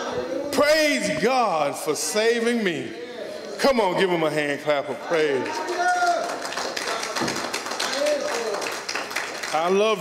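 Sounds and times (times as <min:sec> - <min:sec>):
congregation clapping: 0:05.1 - 0:10.0.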